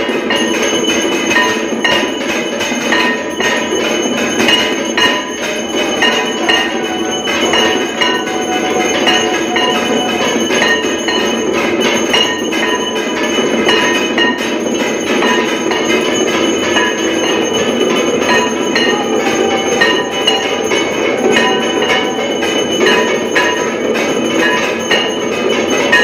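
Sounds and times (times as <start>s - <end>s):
temple bells clanging: 0.0s - 26.0s.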